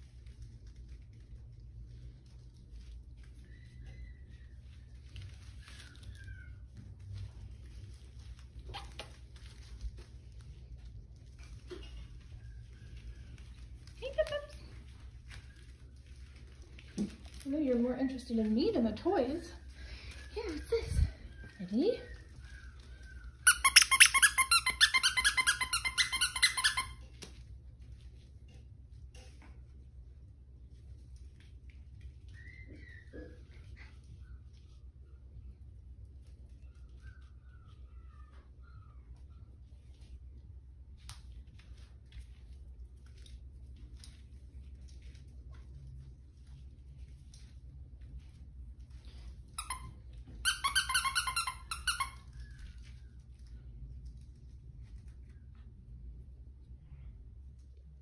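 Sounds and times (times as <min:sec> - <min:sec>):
puppies high-pitched squeaks: 0:03.2 - 0:09.8, 0:20.0 - 0:27.1, 0:32.1 - 0:35.6, 0:36.2 - 0:40.1, 0:49.0 - 0:53.5
squeaky dog toy squeaking: 0:23.4 - 0:27.1, 0:49.6 - 0:52.4.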